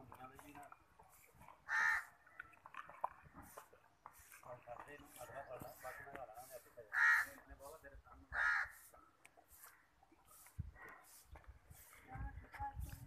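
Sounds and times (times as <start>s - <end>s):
crow cawing: 1.6s - 2.4s, 6.9s - 7.5s, 8.3s - 8.9s.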